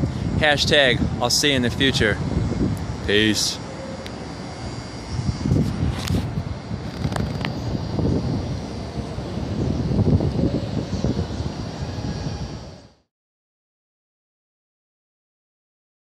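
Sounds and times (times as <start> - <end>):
low uneven city rumble: 0.0 - 13.0.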